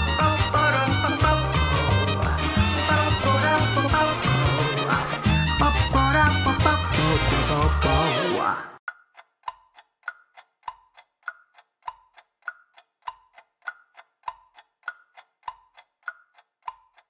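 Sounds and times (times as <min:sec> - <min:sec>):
cartoon clock ticking: 0:00.0 - 0:05.0, 0:05.6 - 0:08.0, 0:08.8 - 0:17.0.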